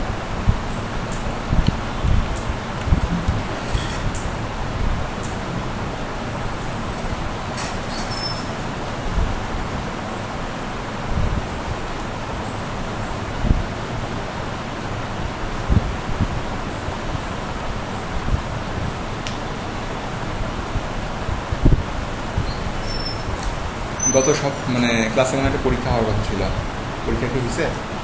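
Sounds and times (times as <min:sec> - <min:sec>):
room noise hiss: 0:00.0 - 0:28.0.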